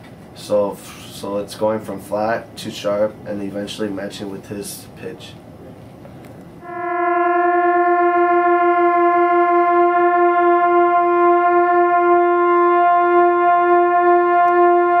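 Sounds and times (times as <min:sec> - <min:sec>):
two trumpets holding wavering note: 0:06.6 - 0:15.0.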